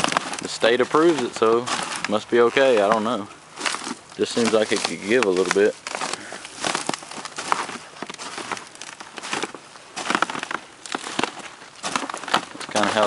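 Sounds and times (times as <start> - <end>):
packing peanuts crinkling: 0.0 - 13.0.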